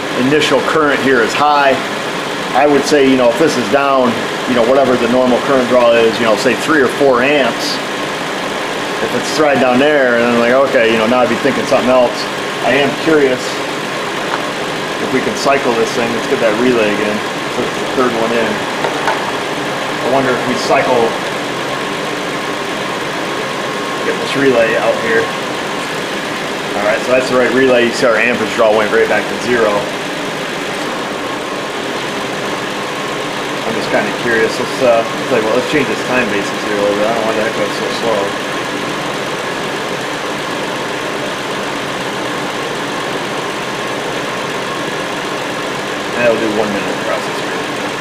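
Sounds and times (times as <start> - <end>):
car engine idling: 0.0 - 48.0.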